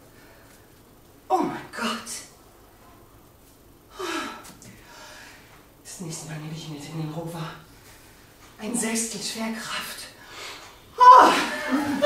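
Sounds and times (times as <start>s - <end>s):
soft breath: 3.9s - 5.6s.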